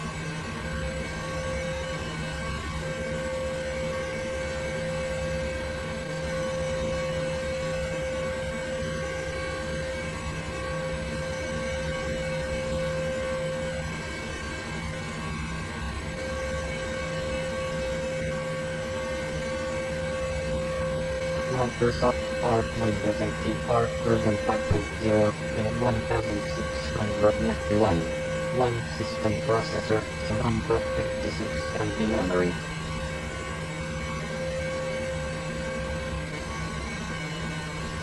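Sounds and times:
machine hum and whine: 0.0 - 38.0.

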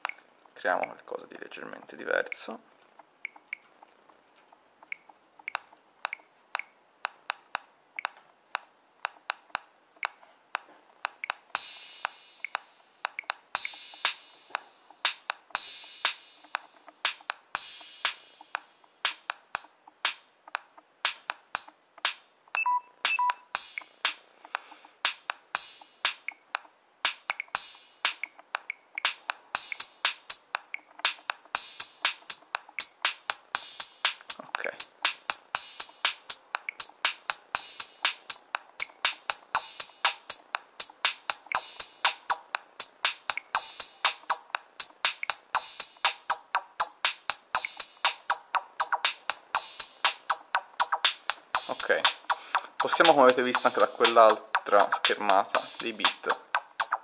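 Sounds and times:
electronic drum machine beat: 0.0 - 0.2, 9.0 - 57.0
hissy hi-hat hits: 11.6 - 20.2, 21.0 - 22.2, 23.1 - 24.3, 25.0 - 26.3, 27.0 - 28.3, 29.0 - 57.0.

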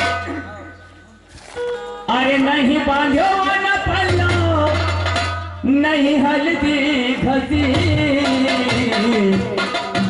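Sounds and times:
low folk accompaniment: 0.0 - 10.0.

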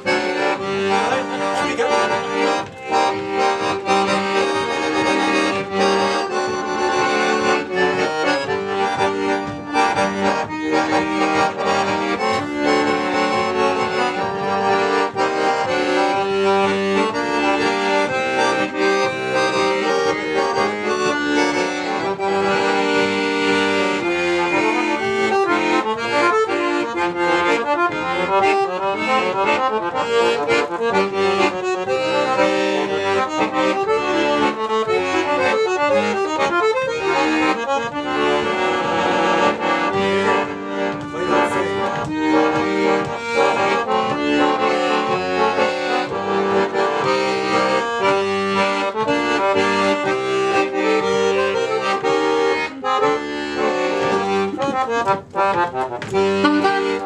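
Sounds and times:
piano accordion playing bluesy tune: 0.0 - 57.0.

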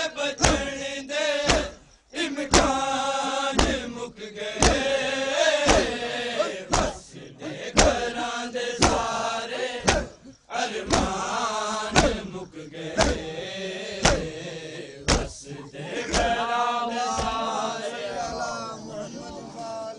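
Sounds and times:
men chanting a lament: 0.0 - 19.9
hands beating chests: 0.4 - 0.8, 1.5 - 1.8, 2.5 - 2.9, 3.5 - 3.9, 4.6 - 5.0, 5.6 - 6.1, 6.7 - 7.0, 7.6 - 9.2, 9.8 - 12.3, 13.0 - 13.3, 14.0 - 14.4, 15.1 - 15.4, 16.1 - 16.4, 17.1 - 17.5.

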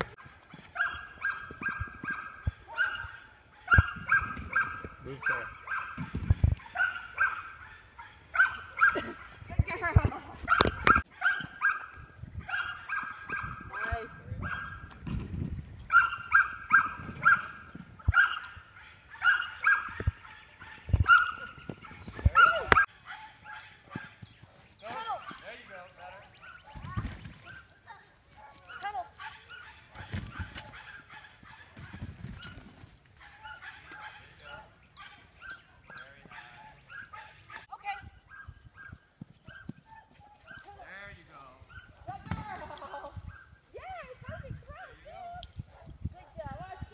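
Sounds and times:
dog barking and yipping: 0.0 - 9.5, 10.4 - 14.9, 15.9 - 41.0.

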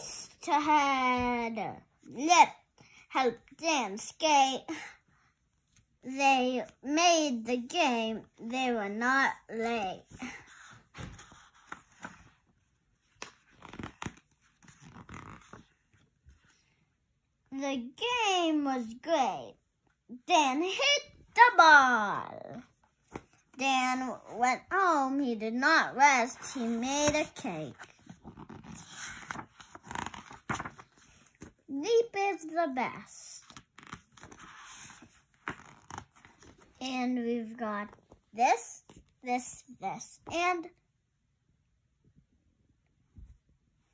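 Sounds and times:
child's voice: 0.0 - 5.0, 6.0 - 10.5, 17.5 - 22.8, 23.6 - 28.0, 31.7 - 33.6, 36.8 - 40.8
book pages rustling: 8.2 - 16.7, 22.5 - 24.7, 26.2 - 31.7, 33.4 - 36.8, 37.4 - 39.2.

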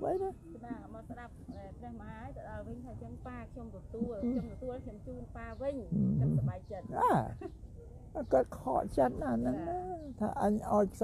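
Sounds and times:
man talking: 0.0 - 0.4, 6.9 - 7.4, 8.2 - 11.0.

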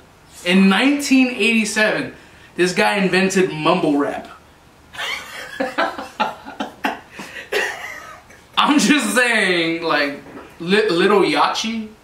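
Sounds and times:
men laughing: 5.0 - 9.1.

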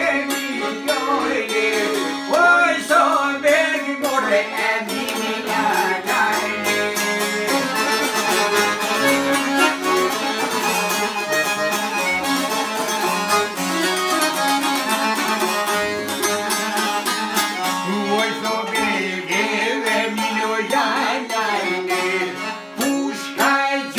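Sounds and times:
lutes picked in rapid notes: 0.0 - 23.8
accordion playing melody: 0.0 - 23.9.

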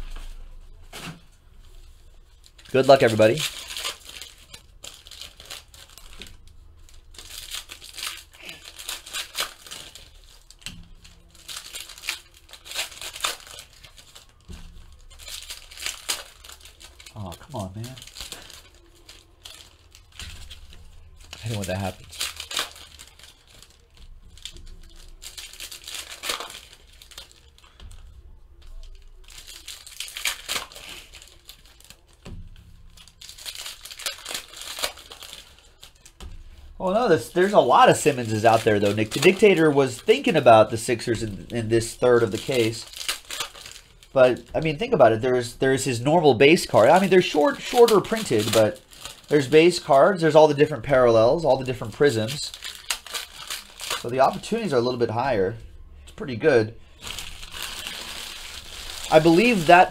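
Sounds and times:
wrapper tearing and crinkling: 0.9 - 55.6, 56.2 - 59.9
cards shuffled and handled: 45.8 - 55.0.

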